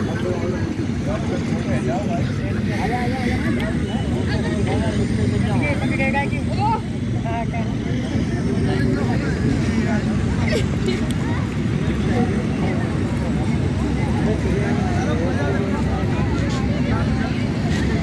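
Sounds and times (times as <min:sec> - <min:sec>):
distant people talking and calling: 0:00.0 - 0:18.0.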